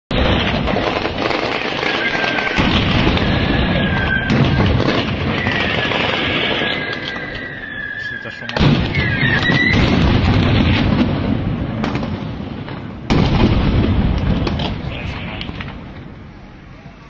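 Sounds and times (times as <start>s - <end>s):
grenade explosions: 0.1s - 16.8s
shrill drawn-out tones: 3.2s - 9.9s
gunfire bangs and pops: 8.5s - 14.9s.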